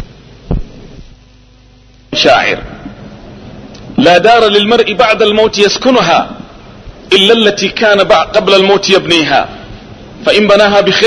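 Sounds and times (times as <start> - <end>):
short low thump: 0.0 - 1.1
electrical hum and hiss: 0.0 - 11.0.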